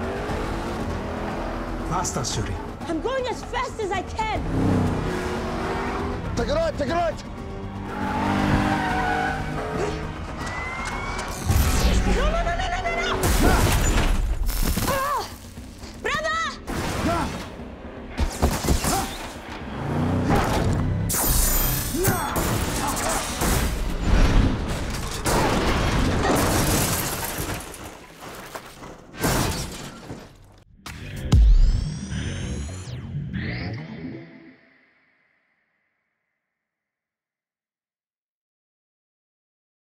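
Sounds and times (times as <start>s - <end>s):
car engines running hard: 0.0s - 11.7s, 19.2s - 21.9s
film score: 0.0s - 26.7s, 27.3s - 35.9s
glass shattering: 21.1s - 23.8s, 24.9s - 28.0s.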